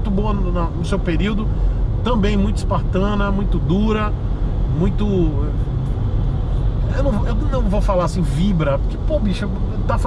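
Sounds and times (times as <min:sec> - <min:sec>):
man talking: 0:00.0 - 0:05.6, 0:06.8 - 0:10.0
car cabin road rumble: 0:00.0 - 0:10.0.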